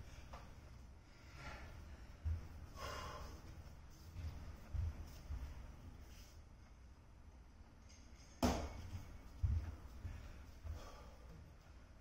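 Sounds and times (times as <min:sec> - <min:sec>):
man breathing out: 0:02.8 - 0:03.4.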